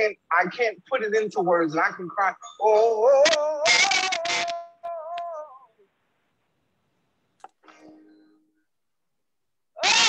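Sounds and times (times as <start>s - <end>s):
man singing: 2.6s - 5.7s.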